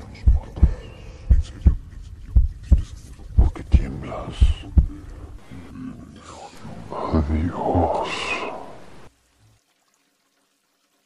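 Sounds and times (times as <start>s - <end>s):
heartbeat thumps: 0.0s - 5.5s.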